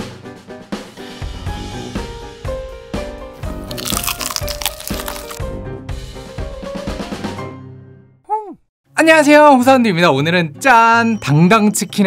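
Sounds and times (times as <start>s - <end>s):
fried chicken crunching: 3.7s - 5.4s.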